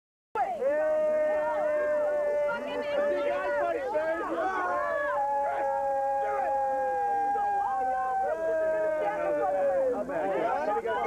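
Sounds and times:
overlapping long howls: 0:00.6 - 0:10.8.

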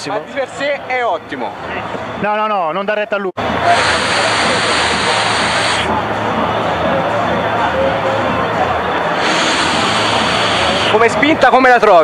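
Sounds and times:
crowd babble: 0:00.0 - 0:02.4, 0:03.4 - 0:12.0
vape coil sizzling hiss: 0:03.7 - 0:05.9, 0:09.2 - 0:11.0.

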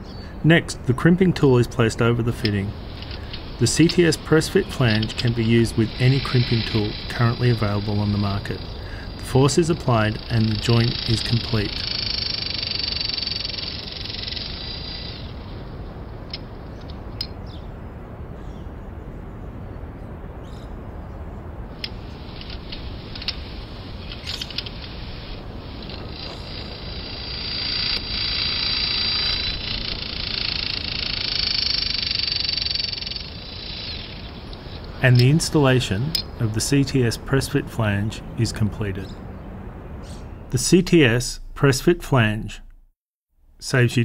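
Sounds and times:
press tool motor whining: 0:25.1 - 0:32.3.

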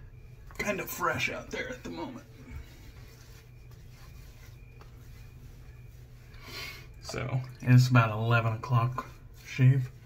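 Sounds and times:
steady low hum: 0:00.0 - 0:10.0
hands rubbing wet skin: 0:01.6 - 0:06.4.

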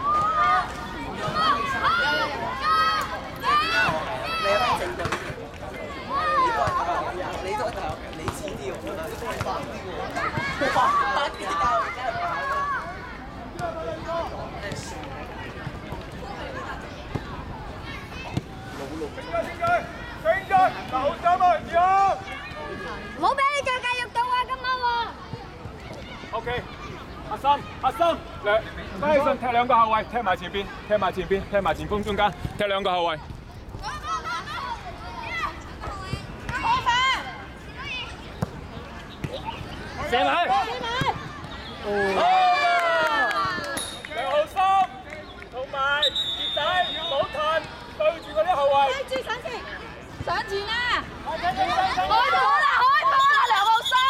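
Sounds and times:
children shouting and calling: 0:00.0 - 0:07.7, 0:09.8 - 0:28.4, 0:33.4 - 0:45.0, 0:46.6 - 0:54.0
people shouting: 0:50.7 - 0:54.0.

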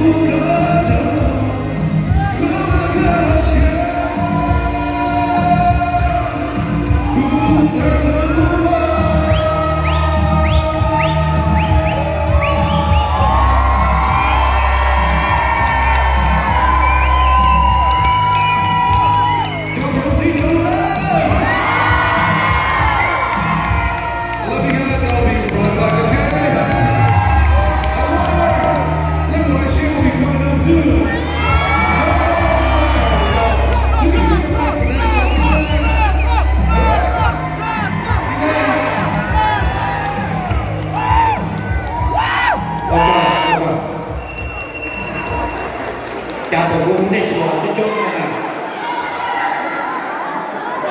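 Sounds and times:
man singing into microphone: 0:00.0 - 0:13.1, 0:24.4 - 0:39.9
live pop music with heavy bass: 0:00.0 - 0:45.7
crowd cheering and shouting: 0:00.0 - 0:50.9.

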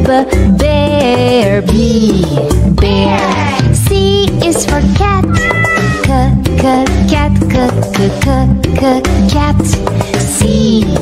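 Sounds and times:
upbeat children's music: 0:00.0 - 0:11.0
cat meowing: 0:05.3 - 0:06.0.

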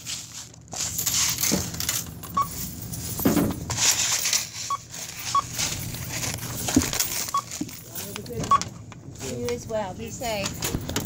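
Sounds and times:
rustling and handling noise: 0:00.0 - 0:11.0.

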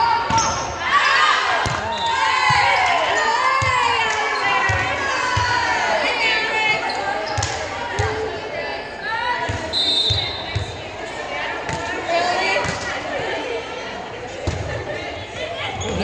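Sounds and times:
players shouting in a gymnasium: 0:00.0 - 0:16.0
referee's whistle blast: 0:09.7 - 0:10.6.

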